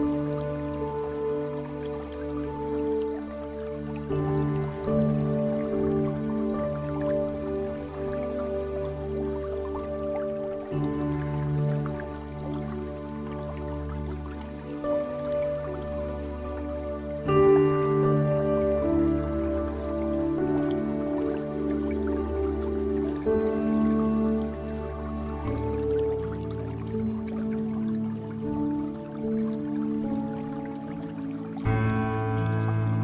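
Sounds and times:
slow ambient music: 0:00.0 - 0:33.0
water dripping: 0:00.0 - 0:33.0.

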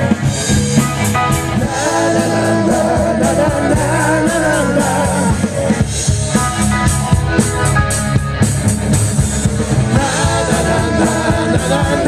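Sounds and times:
drum kit: 0:00.0 - 0:12.0
electric guitar: 0:00.0 - 0:12.0
live rock band playing: 0:00.0 - 0:12.0
male singer: 0:01.5 - 0:05.7, 0:09.9 - 0:12.0.

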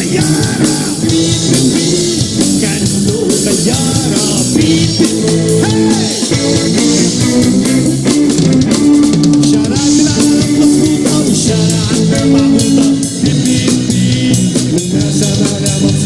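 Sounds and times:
bass guitar: 0:00.0 - 0:16.0
drum kit with cymbals: 0:00.0 - 0:16.0
electric guitar: 0:00.0 - 0:16.0.

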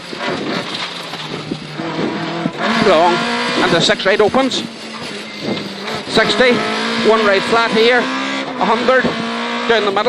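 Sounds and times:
car engine from inside cabin: 0:00.0 - 0:10.0.

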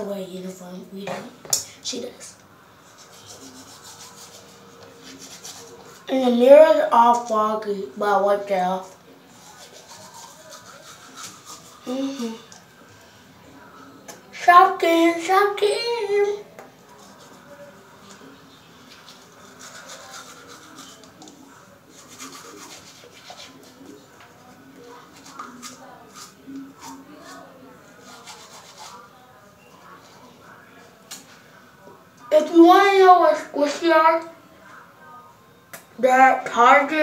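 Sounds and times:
toothbrush scrubbing teeth: 0:02.8 - 0:06.1, 0:09.3 - 0:12.7, 0:16.8 - 0:29.2.

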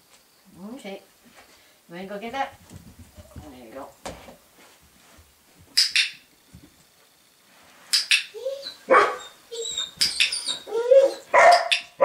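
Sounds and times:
dog whining: 0:08.3 - 0:11.9
dog barking: 0:08.9 - 0:09.4, 0:11.0 - 0:12.0.

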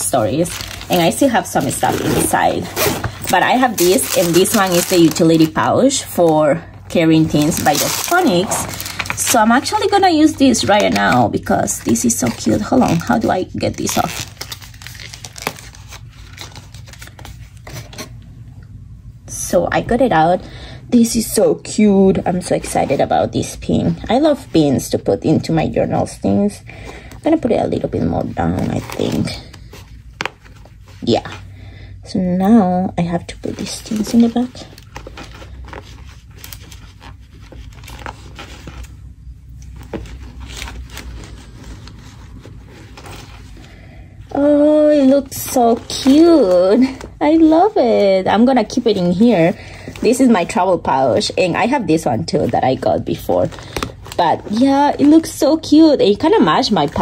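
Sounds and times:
steady low hum: 0:00.0 - 0:56.5
low steady rumble: 0:00.0 - 0:57.0.

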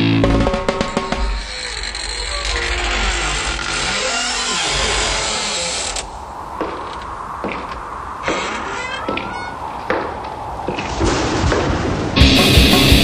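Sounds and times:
creaking scraping mechanical noise: 0:00.3 - 0:09.9.

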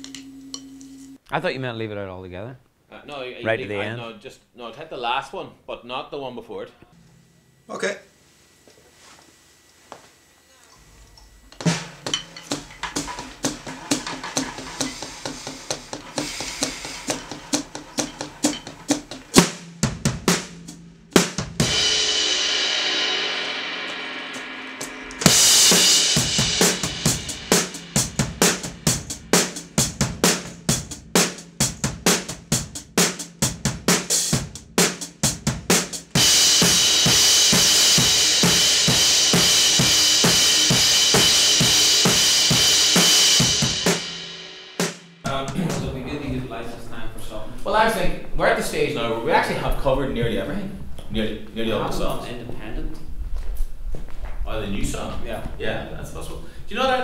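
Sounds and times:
drum kit beat: 0:11.4 - 0:46.4
cymbal crash: 0:11.6 - 0:31.4, 0:36.2 - 0:45.4
cymbal wash: 0:21.5 - 0:30.6, 0:36.2 - 0:45.2.

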